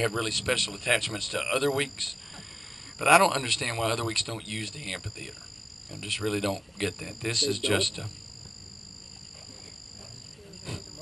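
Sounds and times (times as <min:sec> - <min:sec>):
night insects chorus: 0:00.0 - 0:11.0.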